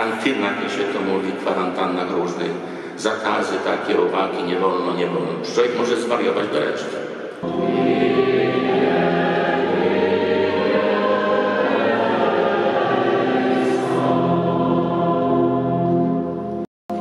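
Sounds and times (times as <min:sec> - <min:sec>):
mixed choir singing: 0:07.4 - 0:16.7.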